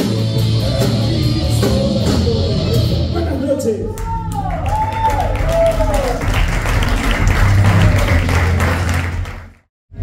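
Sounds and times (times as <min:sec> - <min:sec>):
audience applauding and cheering: 0:03.9 - 0:09.7.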